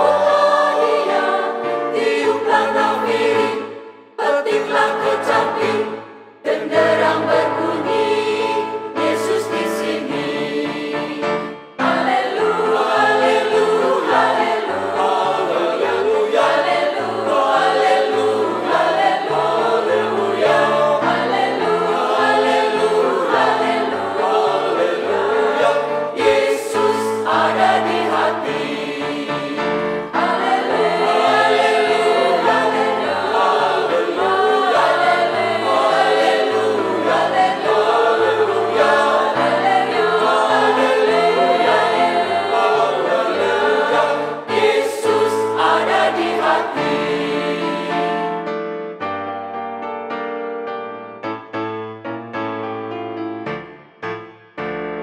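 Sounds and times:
mixed choir singing a hymn: 0.0s - 48.4s.

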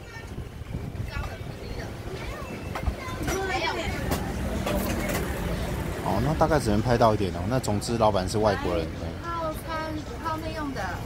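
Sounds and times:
faint background speech: 0.0s - 11.0s.

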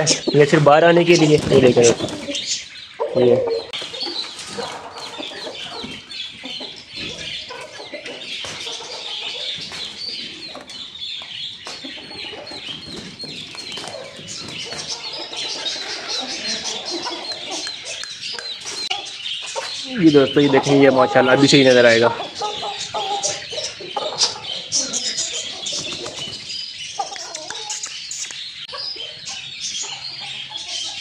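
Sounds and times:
chickens clucking: 0.0s - 31.0s
small birds chirping: 0.0s - 31.0s.

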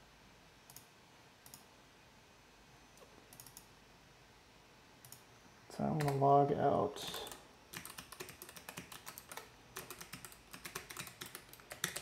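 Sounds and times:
computer mouse clicks: 0.7s - 1.7s, 3.0s - 3.7s, 5.0s - 5.3s.

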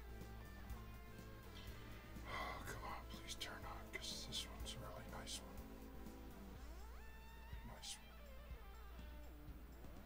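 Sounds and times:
quiet background music: 0.0s - 10.0s
person whispering: 2.2s - 5.6s, 7.6s - 8.1s.

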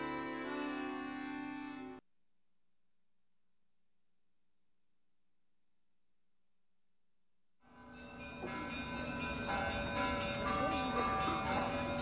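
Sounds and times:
bells ringing: 7.6s - 12.0s.

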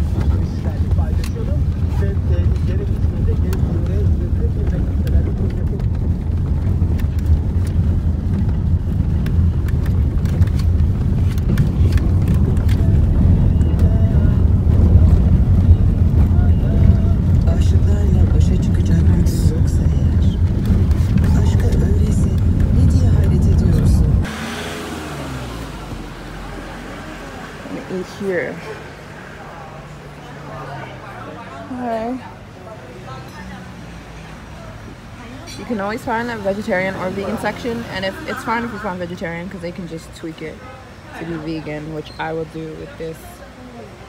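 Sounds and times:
car engine and road rumble: 0.0s - 44.0s.

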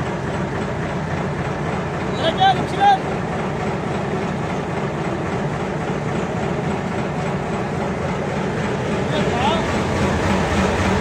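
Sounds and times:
boat engine droning: 0.0s - 11.0s
wind and water rushing: 0.0s - 11.0s.

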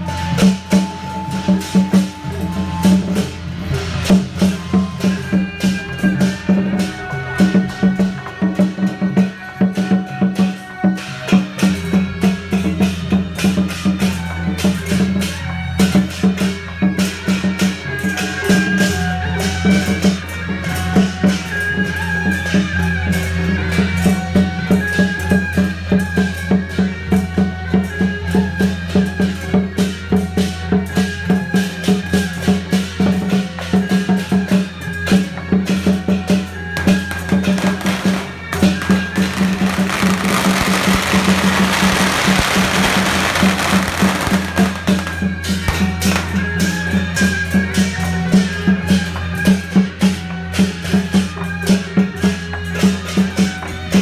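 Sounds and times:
drum and wood-block beat: 0.0s - 54.0s.

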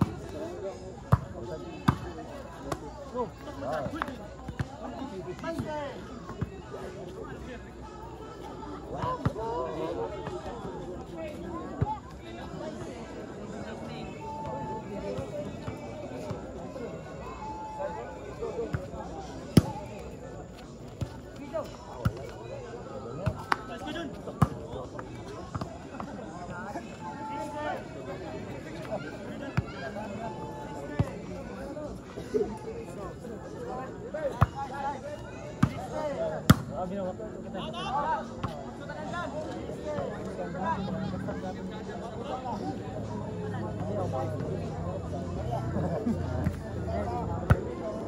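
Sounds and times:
crowd chattering and shouting: 0.0s - 48.0s.

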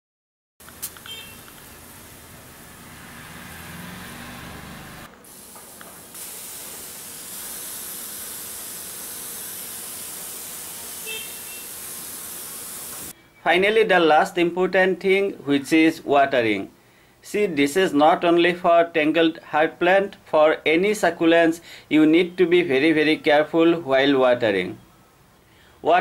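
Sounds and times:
pressure sprayer hissing: 0.6s - 13.1s.

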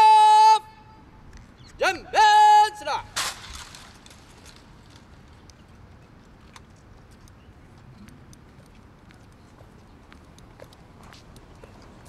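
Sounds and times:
footsteps on paving: 3.3s - 12.0s.

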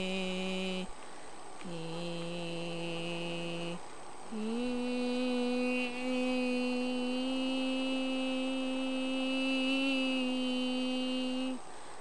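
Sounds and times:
woman humming low note: 0.0s - 0.9s, 1.6s - 11.6s.

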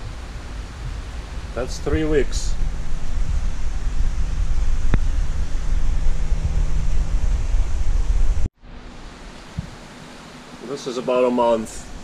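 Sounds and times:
aquarium water and pumps rushing: 8.7s - 12.0s.

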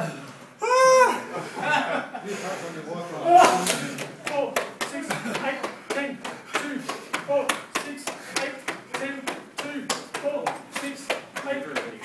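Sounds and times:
punches slapping on cloth: 3.4s - 12.0s.

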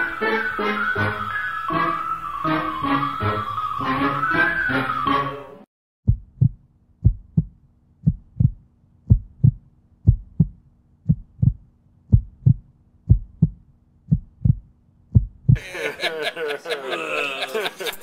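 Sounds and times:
music: 0.0s - 5.7s
heartbeat thumps: 6.0s - 15.6s.

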